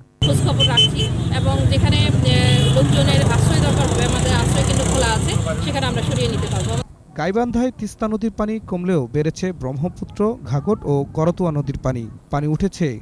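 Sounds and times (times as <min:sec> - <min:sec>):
woman speaking: 0:00.2 - 0:06.9.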